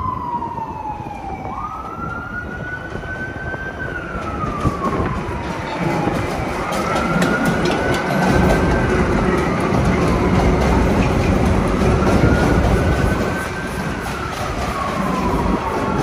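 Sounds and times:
steel wheels rumbling on rail: 0:01.7 - 0:16.0
wheels clicking over rail joints: 0:03.9 - 0:16.0.

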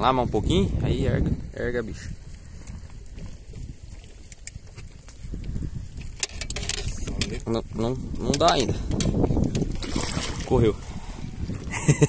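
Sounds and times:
wind buffeting microphone: 0:00.0 - 0:12.0
sharp clicks and knocks: 0:08.3 - 0:09.7.

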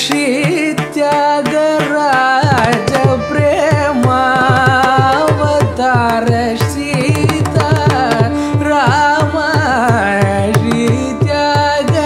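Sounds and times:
ornamented vocal singing: 0:00.0 - 0:12.0
hand drum strokes: 0:00.1 - 0:08.3.

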